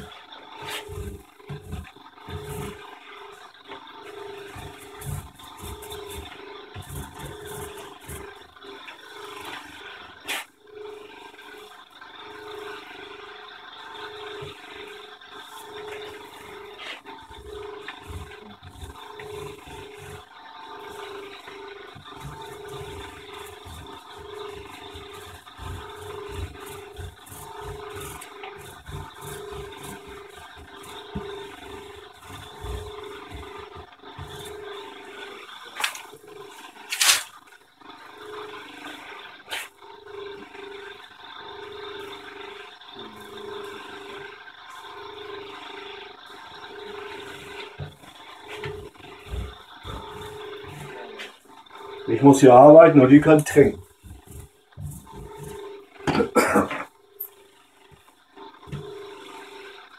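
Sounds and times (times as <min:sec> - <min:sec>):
roller rubbing over fabric: 0:00.0 - 0:59.9.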